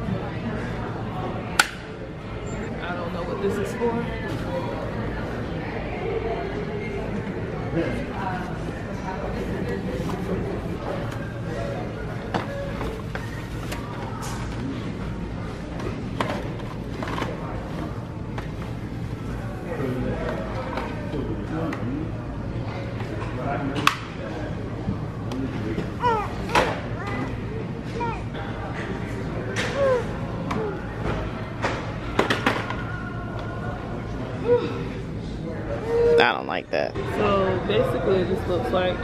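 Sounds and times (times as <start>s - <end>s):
store background noise: 0.0s - 39.0s.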